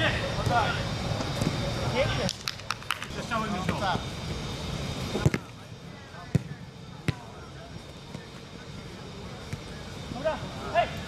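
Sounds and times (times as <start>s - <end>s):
football being kicked: 5.2s - 5.5s, 6.2s - 7.3s.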